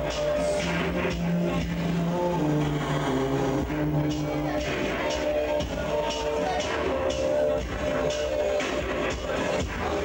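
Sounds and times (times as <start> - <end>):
low bass line: 0.6 - 5.9
held synthesizer notes: 0.8 - 5.9.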